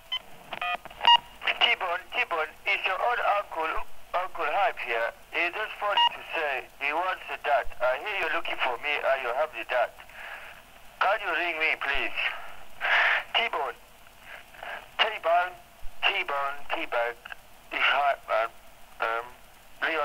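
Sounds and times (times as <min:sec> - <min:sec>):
speech over telephone line: 0:01.4 - 0:10.0, 0:11.0 - 0:12.4, 0:13.3 - 0:13.8, 0:14.6 - 0:20.0.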